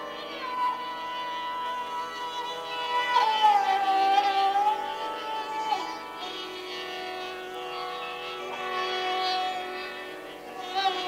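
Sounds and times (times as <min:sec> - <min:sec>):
sarangi bowing long note: 0:00.0 - 0:11.0.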